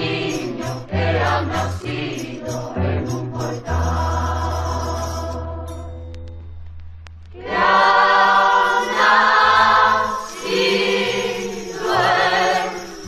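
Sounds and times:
choir singing a carol: 0.0 - 5.9, 7.4 - 13.0
low bass accompaniment: 0.0 - 8.5.

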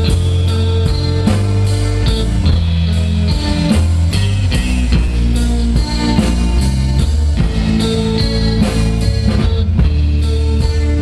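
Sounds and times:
drum kit and cymbal hits: 0.0 - 11.0
electric bass notes: 0.0 - 11.0
electric guitar chords: 0.0 - 11.0.

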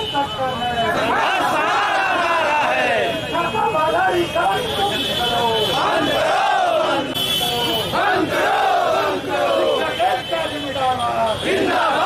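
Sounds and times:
crowd shouting slogans: 0.8 - 4.8, 5.4 - 12.0.

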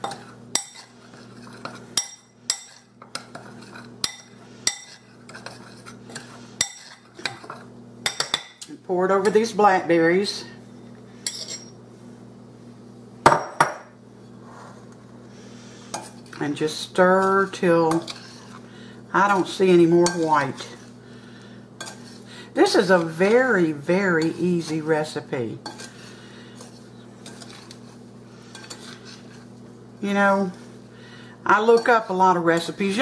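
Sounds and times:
utensil scraping glass bowl: 2.6 - 7.6, 17.7 - 18.6, 26.6 - 29.5
kitchenware knocking glass bowl: 13.2 - 13.9.

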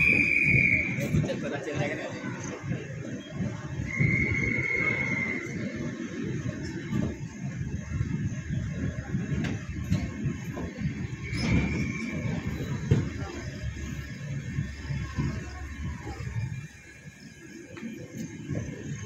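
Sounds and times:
high brake squeal: 0.0 - 1.3, 3.7 - 6.0, 11.1 - 13.0
train coaches rumbling on rails: 0.0 - 19.0.

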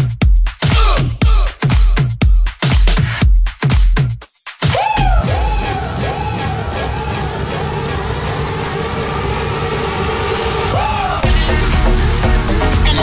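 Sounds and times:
electronic dance music: 0.0 - 13.0
swooping synth lead line: 5.2 - 13.0.

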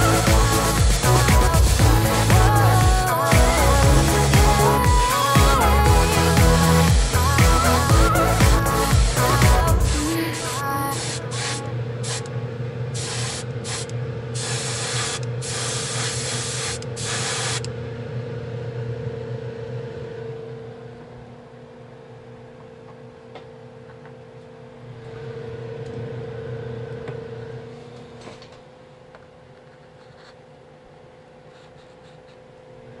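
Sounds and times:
airbrush hissing bursts: 0.0 - 12.3, 13.0 - 17.7
steady low hum: 0.0 - 33.0.

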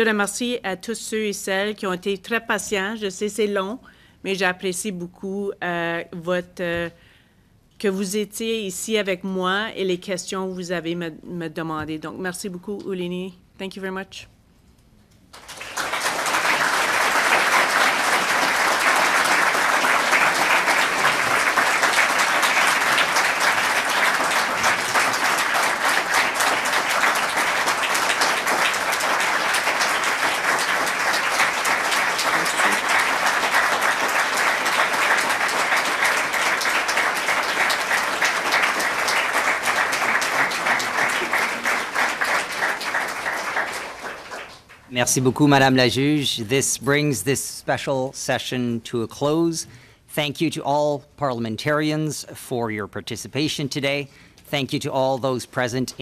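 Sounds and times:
crowd applause: 15.4 - 44.7.

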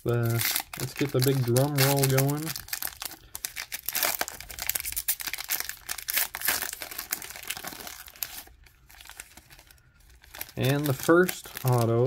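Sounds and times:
foil wrapper tearing and crinkling: 0.0 - 12.0.

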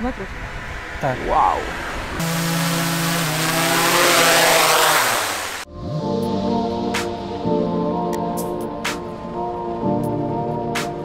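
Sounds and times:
drone propellers whirring: 0.0 - 11.0
background music: 5.7 - 11.0.

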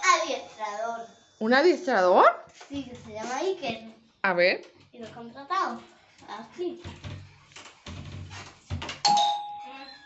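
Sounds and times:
doorbell chime: 9.0 - 10.0.

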